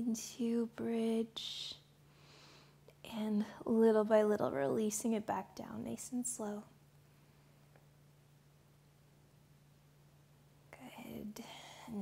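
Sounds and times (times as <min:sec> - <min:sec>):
woman speaking: 0:00.0 - 0:01.8, 0:03.1 - 0:06.7
faint low hum: 0:00.0 - 0:12.0
woman breathing: 0:02.0 - 0:02.9.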